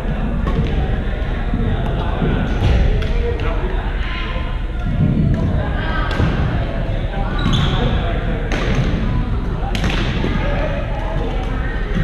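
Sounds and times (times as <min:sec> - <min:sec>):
many players' voices: 0:00.0 - 0:12.0.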